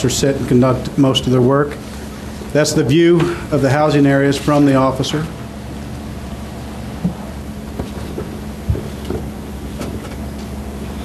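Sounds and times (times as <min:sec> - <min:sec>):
electrical hum and hiss: 0:00.0 - 0:11.0.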